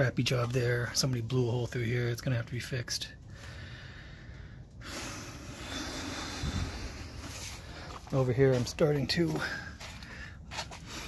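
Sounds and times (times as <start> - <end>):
person breathing close: 3.3 - 8.1.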